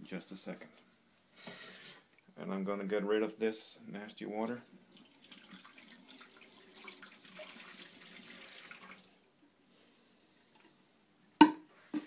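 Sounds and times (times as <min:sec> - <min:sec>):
water splashing into metal sink: 0:04.9 - 0:09.1.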